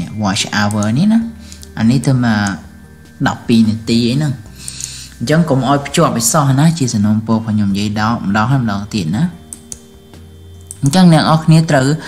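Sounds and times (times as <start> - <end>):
person speaking: 0.0 - 9.6
faint steady hum: 0.0 - 12.0.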